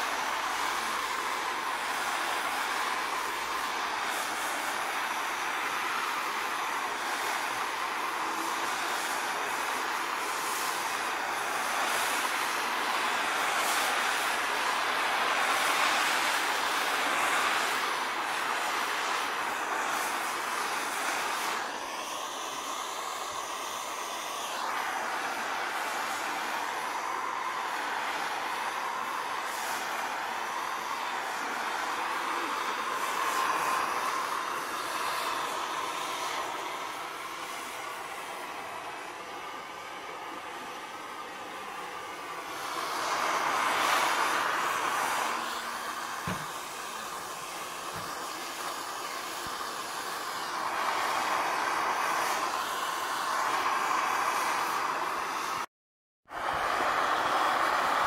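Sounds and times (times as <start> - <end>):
gas torch hissing: 0.0 - 58.0.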